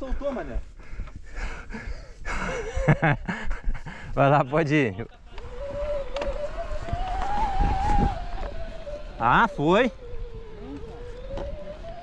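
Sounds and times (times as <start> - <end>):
mountain bike rolling on dirt: 5.2 - 12.0
motor-like whine: 5.3 - 12.0.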